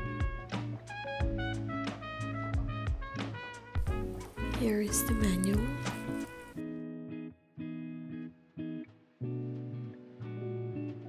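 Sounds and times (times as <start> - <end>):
plucked guitar music: 3.8 - 11.0.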